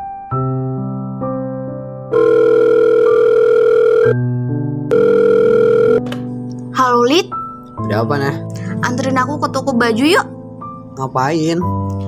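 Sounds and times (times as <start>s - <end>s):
soft piano music: 0.0s - 12.0s
buzzy telephone ringing: 2.1s - 4.2s, 4.9s - 6.0s.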